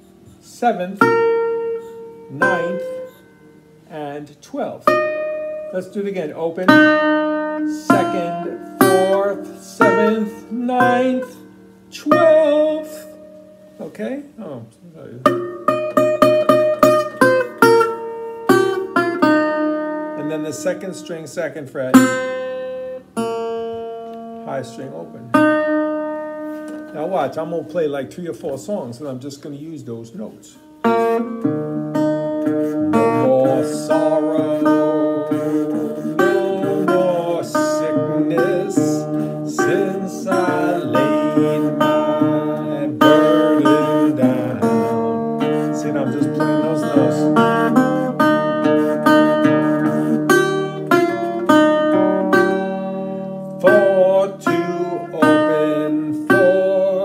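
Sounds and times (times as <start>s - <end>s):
resonator guitar picked melody: 0.0s - 57.0s.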